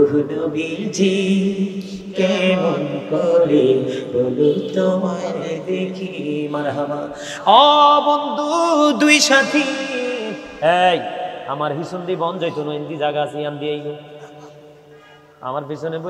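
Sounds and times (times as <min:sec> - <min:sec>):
man chanting melodically: 0:00.0 - 0:14.7.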